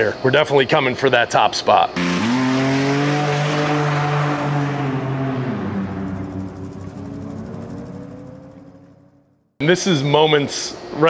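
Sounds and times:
car engine revving and accelerating: 2.0s - 9.4s.

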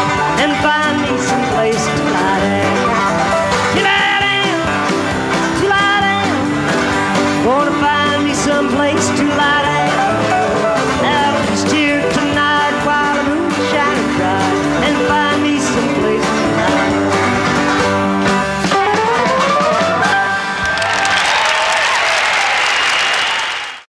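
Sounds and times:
country band with banjo: 0.0s - 20.6s
audience applause: 20.3s - 23.9s.

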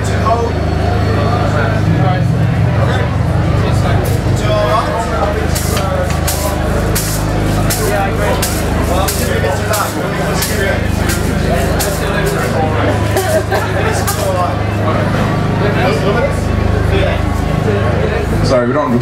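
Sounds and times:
low bass line: 0.0s - 19.0s
drums steady beat: 3.7s - 14.9s.

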